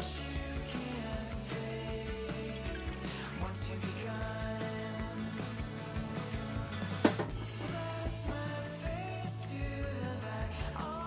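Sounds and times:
background music: 0.0s - 11.0s
sharp knock: 7.0s - 7.8s.

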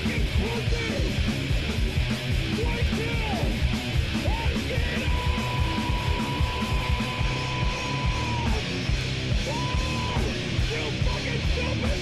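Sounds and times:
metal band playing fast: 0.0s - 12.0s.

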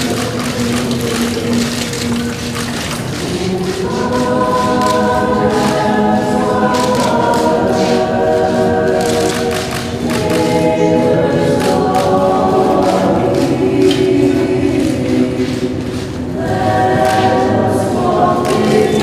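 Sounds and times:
choir singing long notes: 0.0s - 19.0s.

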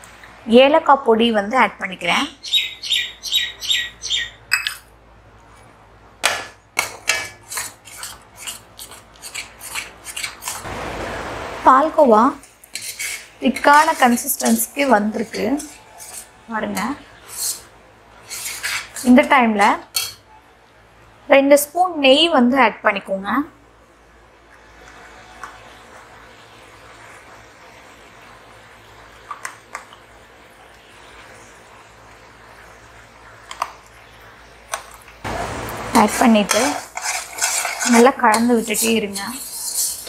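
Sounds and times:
woman's voice: 0.4s - 2.4s, 11.6s - 12.4s, 13.4s - 15.8s, 16.5s - 17.0s, 19.0s - 19.9s, 21.3s - 23.6s, 35.9s - 36.8s, 37.9s - 39.4s
metal spatula scraping pan: 6.8s - 10.7s, 12.4s - 19.3s, 36.0s - 40.0s.

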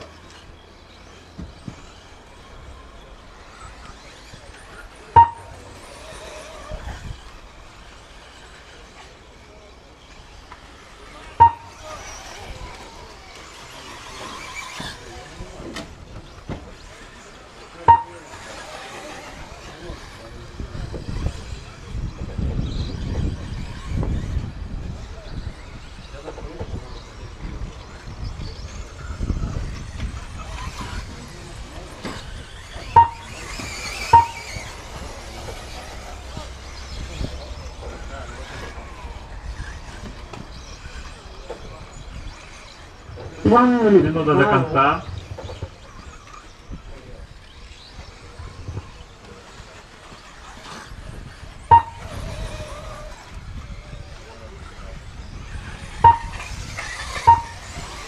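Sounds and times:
race track rumble: 0.0s - 58.0s
short high beeps: 5.2s - 5.6s, 11.4s - 11.8s, 17.9s - 18.2s, 33.0s - 33.4s, 34.1s - 34.6s, 43.5s - 45.1s, 51.7s - 52.1s, 56.0s - 56.4s, 57.2s - 57.6s.

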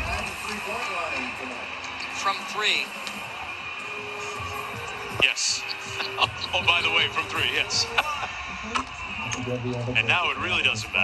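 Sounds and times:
arena noise: 0.0s - 11.0s
commentator speech: 5.2s - 8.3s, 9.3s - 11.0s.

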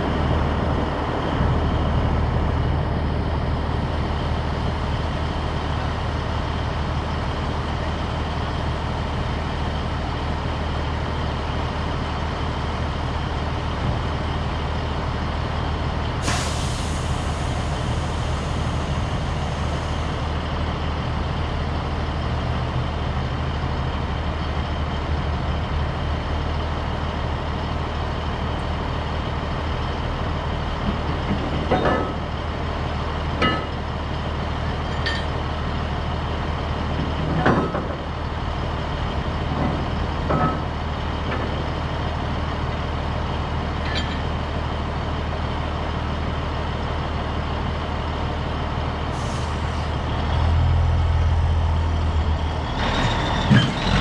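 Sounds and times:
diesel truck idling: 0.0s - 54.0s
air hiss: 16.2s - 20.2s, 49.1s - 49.9s.

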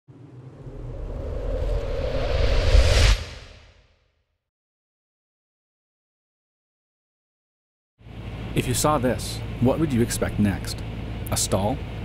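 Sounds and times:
intro whoosh with deep rumble: 0.1s - 4.1s.

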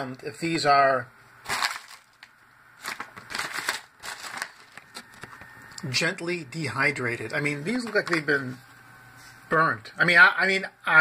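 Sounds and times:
chip bag crinkling: 1.4s - 5.4s.

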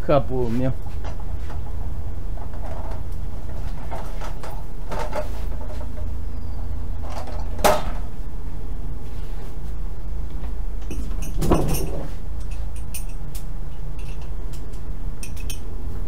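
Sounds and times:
steady low rumble: 0.0s - 16.0s
ratchet straps knocking and rattling: 10.8s - 15.7s.

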